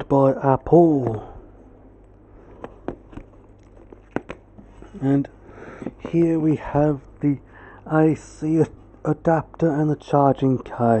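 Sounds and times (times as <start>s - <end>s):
cardboard box clicks and taps: 4.0s - 4.4s.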